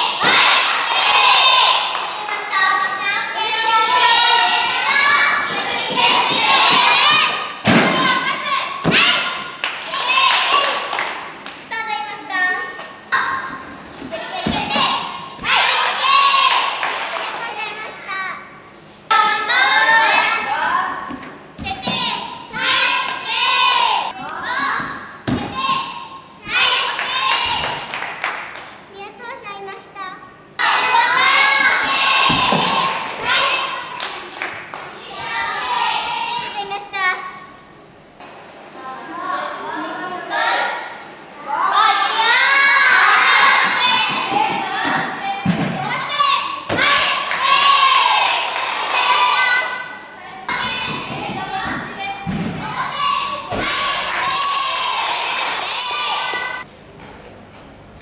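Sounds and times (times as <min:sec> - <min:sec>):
children calling out: 0:30.6 - 0:34.2, 0:38.8 - 0:56.7.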